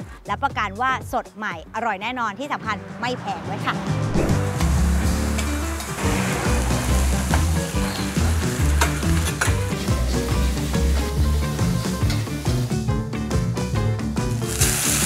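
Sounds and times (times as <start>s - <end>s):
background music with bass line: 0.0s - 15.0s
food sizzling in pans: 4.4s - 12.8s, 14.3s - 15.0s.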